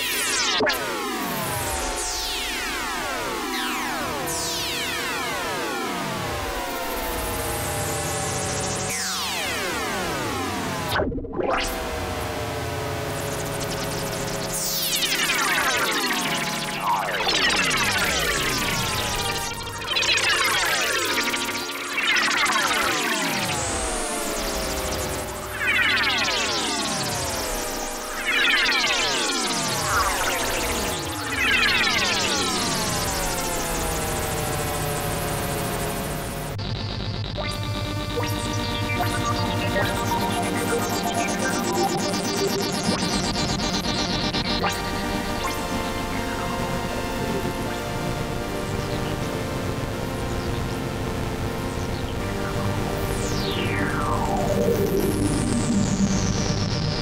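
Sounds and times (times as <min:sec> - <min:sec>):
synthesizer falling pitch sweeps: 0:00.0 - 0:57.0
low sustained synth tones: 0:13.1 - 0:50.4.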